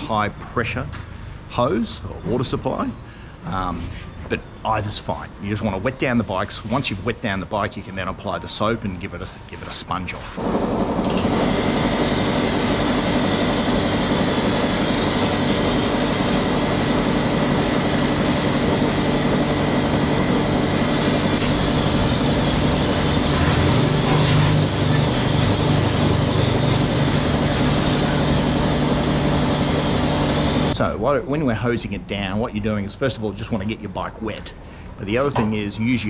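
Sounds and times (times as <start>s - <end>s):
pressure washer pump drone: 10.4s - 30.8s
water jet hissing: 11.3s - 30.8s.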